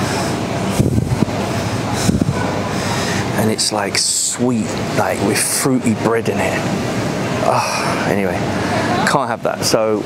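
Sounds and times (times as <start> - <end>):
busy supermarket background noise: 0.0 - 10.0.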